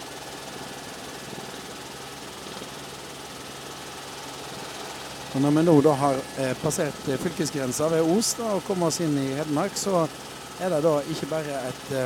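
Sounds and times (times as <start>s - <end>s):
aircraft engine drone: 0.0s - 12.0s.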